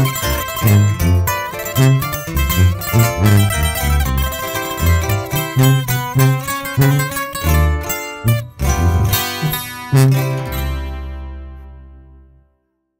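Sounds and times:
plucked acoustic guitar runs: 0:00.0 - 0:11.9
band playing final chord: 0:00.0 - 0:12.2
tuba bass line: 0:00.0 - 0:12.4.

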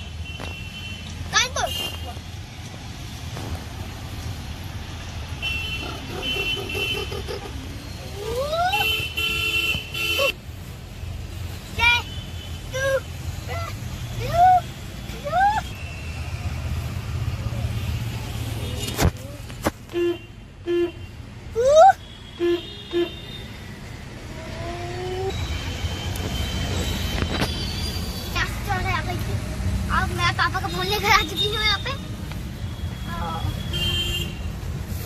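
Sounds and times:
car and traffic rumble: 0:00.0 - 0:35.0
voices: 0:28.1 - 0:33.9.

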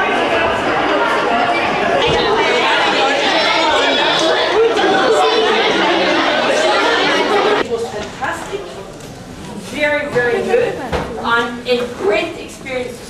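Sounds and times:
crowd chatter in a large hall: 0:00.0 - 0:13.0.

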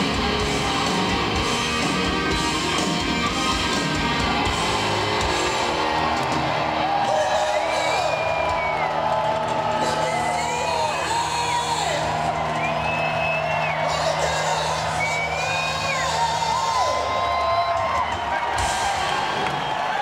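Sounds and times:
crowd cheering and whooping: 0:00.0 - 0:20.0
live hard rock band: 0:00.0 - 0:20.0.

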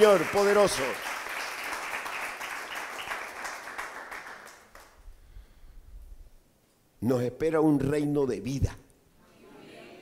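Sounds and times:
crowd applauding: 0:00.0 - 0:05.0.

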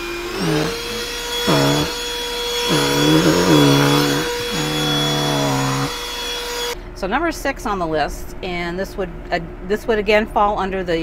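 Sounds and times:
cordless vacuum whining: 0:00.0 - 0:06.8.

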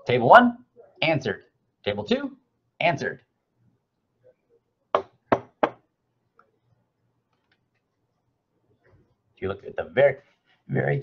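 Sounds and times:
objects knocking on a desk: 0:04.9 - 0:05.8.

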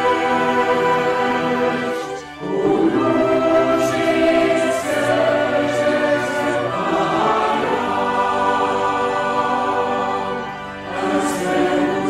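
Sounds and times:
mixed choir singing in harmony: 0:00.0 - 0:12.0.

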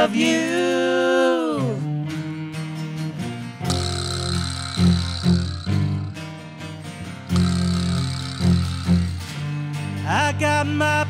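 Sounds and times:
metal hand percussion ringing: 0:03.7 - 0:09.8.

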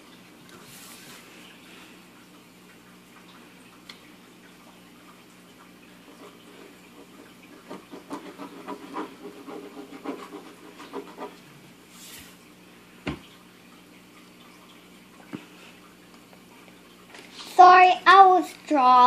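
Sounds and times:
pen scribbling on paper: 0:07.7 - 0:11.4.

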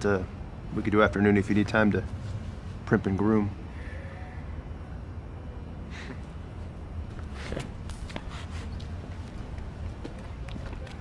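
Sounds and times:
low street rumble: 0:00.0 - 0:11.0
footsteps on pavement: 0:07.0 - 0:11.0.

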